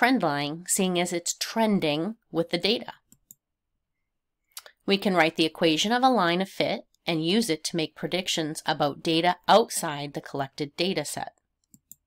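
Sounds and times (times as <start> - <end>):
faint mouse clicks: 3.1 - 3.4.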